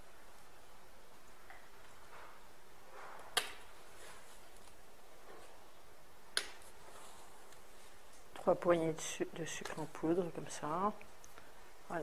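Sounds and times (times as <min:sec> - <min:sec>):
sugar rustling: 0:06.5 - 0:11.6.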